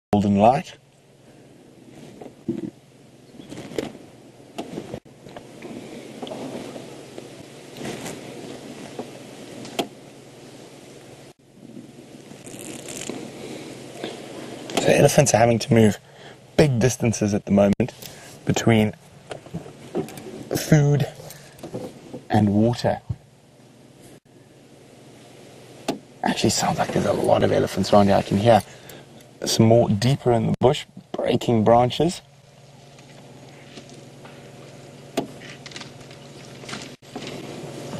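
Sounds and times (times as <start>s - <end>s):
outdoor bush ambience hiss: 0.2s - 37.9s
rustling vegetation: 0.8s - 16.4s, 17.5s - 22.8s, 23.5s - 29.5s, 32.3s - 37.9s
branches snapping: 32.9s - 37.5s.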